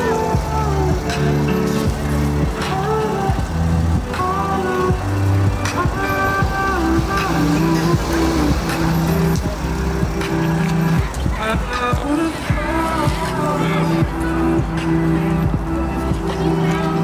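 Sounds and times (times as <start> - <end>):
dance music with beat: 0.0 - 17.0.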